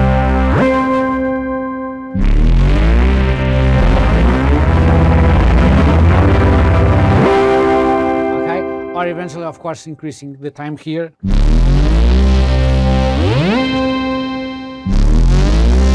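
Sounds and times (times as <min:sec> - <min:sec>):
distorted synth low notes: 0:00.0 - 0:09.8, 0:11.1 - 0:15.9
synth pitch sweeping upward: 0:02.2 - 0:09.2, 0:11.2 - 0:15.9.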